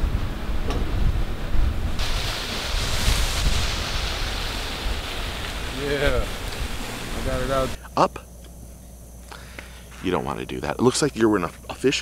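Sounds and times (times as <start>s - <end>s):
wind buffeting microphone: 0.0s - 7.8s.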